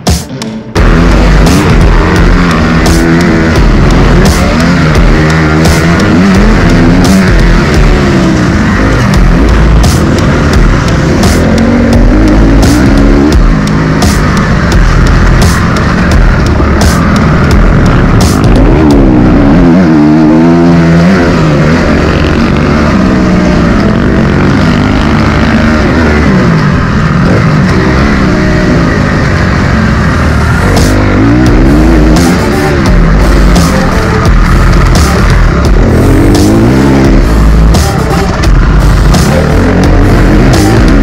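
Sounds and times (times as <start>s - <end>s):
dirt bike engine revving: 0.0s - 41.0s
loud background music: 0.0s - 41.0s.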